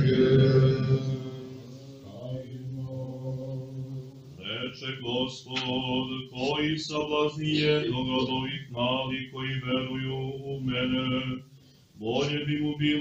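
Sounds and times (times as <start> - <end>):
person intoning chant: 0.0 - 11.4
male liturgical chant: 0.0 - 13.0.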